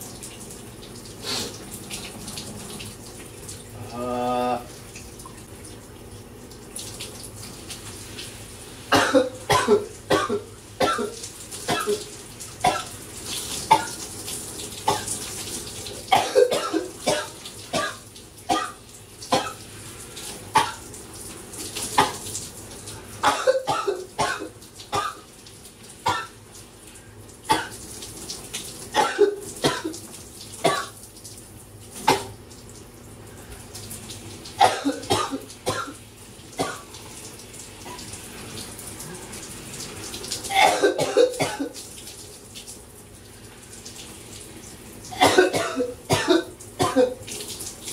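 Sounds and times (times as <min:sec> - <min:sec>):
shower water running: 0:00.0 - 0:47.9
man coughing: 0:08.9 - 0:12.0, 0:16.1 - 0:17.2, 0:23.2 - 0:25.2, 0:29.0 - 0:29.9, 0:34.6 - 0:36.0, 0:40.5 - 0:41.7, 0:45.2 - 0:47.2.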